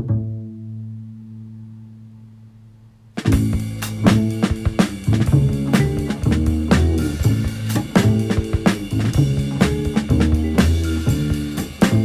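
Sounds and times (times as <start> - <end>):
plucked bass note ringing: 3.2 - 12.0.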